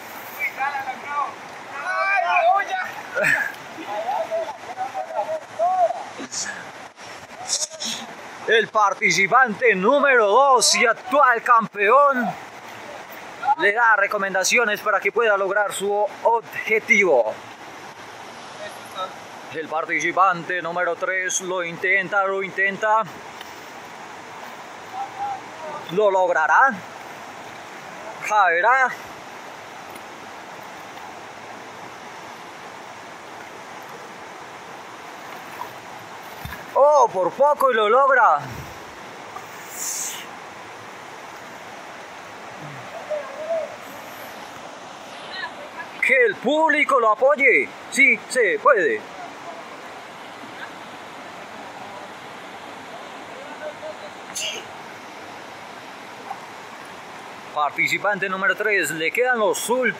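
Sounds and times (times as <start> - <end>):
river rushing over rocks: 0.0 - 59.9.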